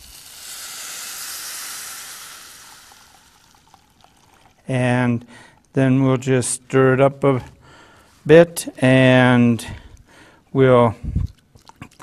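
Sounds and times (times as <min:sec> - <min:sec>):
water pouring into a bowl: 0:00.0 - 0:04.7.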